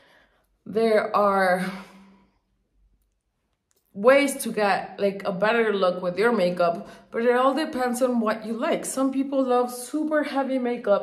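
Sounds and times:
woman speaking: 0.7 - 2.1, 3.9 - 11.0.

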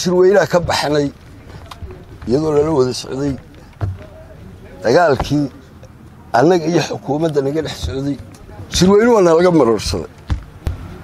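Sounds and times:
man speaking: 0.0 - 5.6, 6.3 - 10.1
short knocks: 0.6 - 4.3, 7.7 - 9.2.

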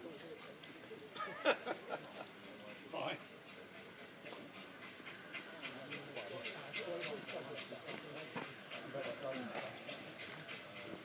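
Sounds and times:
people murmuring: 0.0 - 11.0
distant steam locomotive chuffing: 0.6 - 11.0.

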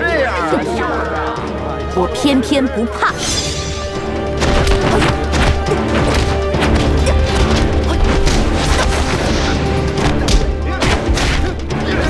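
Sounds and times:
dramatic music with low bass: 0.0 - 12.0.

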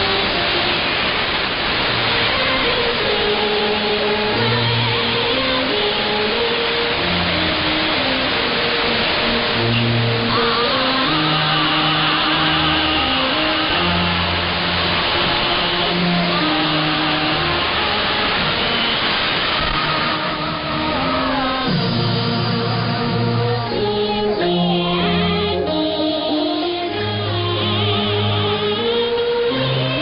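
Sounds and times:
radio melody of held notes: 0.0 - 30.0
shortwave static hiss: 0.0 - 30.0.

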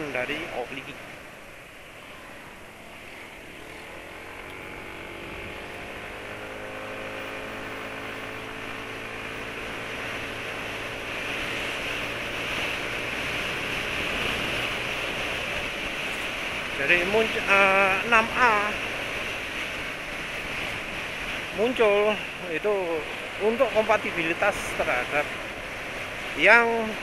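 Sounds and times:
scooter wind and road noise: 0.0 - 27.0.

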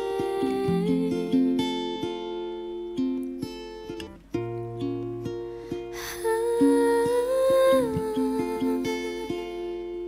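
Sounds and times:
woman singing long wordless note: 0.0 - 2.0, 6.0 - 10.0
pop ballad with acoustic guitar: 0.0 - 10.0.

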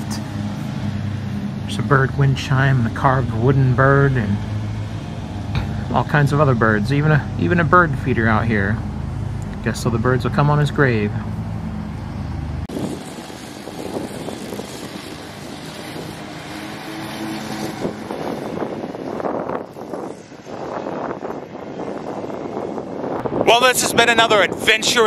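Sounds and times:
low engine-like hum: 0.0 - 24.8
steady rushing noise: 0.0 - 25.0.

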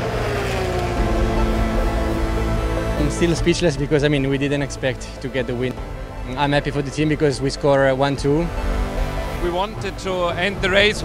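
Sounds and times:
racing car engine passing: 0.0 - 5.4
background music held chords: 0.0 - 11.0.

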